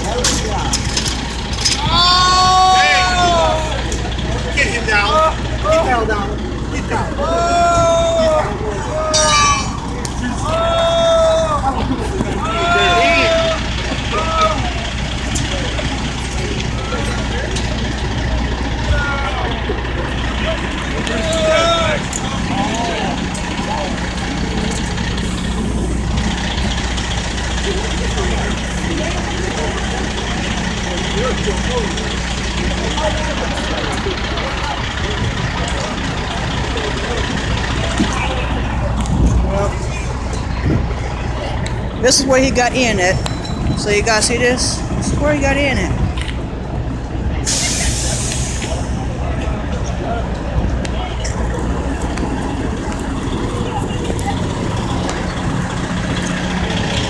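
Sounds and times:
people talking: 0.0s - 46.4s, 47.1s - 57.0s
diesel engine humming: 0.0s - 57.0s.

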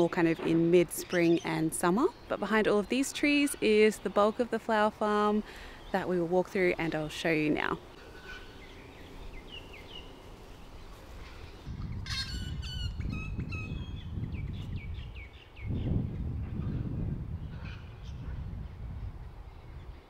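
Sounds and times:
wild birds chirping: 0.0s - 20.0s.

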